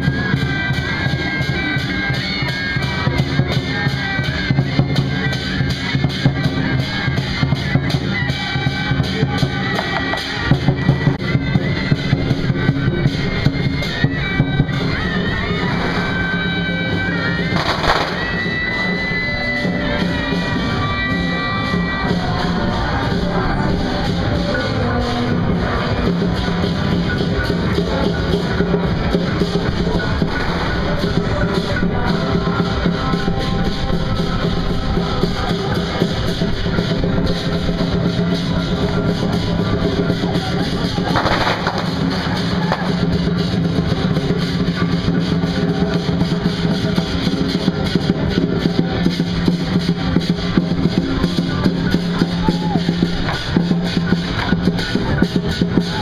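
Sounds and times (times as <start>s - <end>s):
large drum beaten fast: 0.0s - 56.0s
struck percussion: 0.0s - 56.0s.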